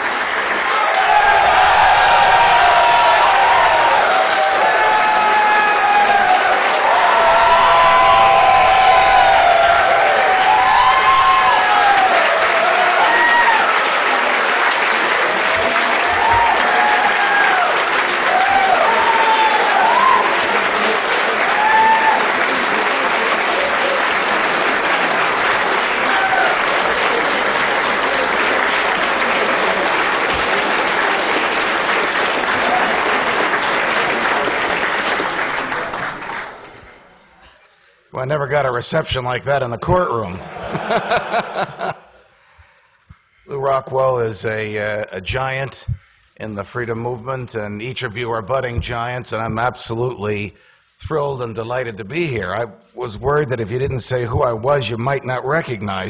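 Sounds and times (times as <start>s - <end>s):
crowd shouting and whooping: 0.0s - 36.7s, 40.4s - 42.0s
audience clapping: 0.0s - 37.2s, 40.5s - 42.1s.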